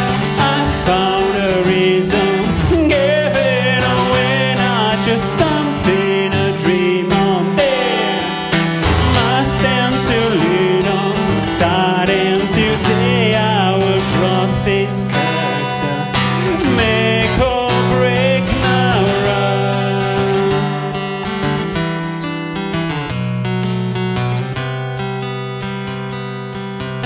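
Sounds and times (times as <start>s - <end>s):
man singing: 0.0s - 21.3s
acoustic guitar strumming: 0.0s - 27.0s.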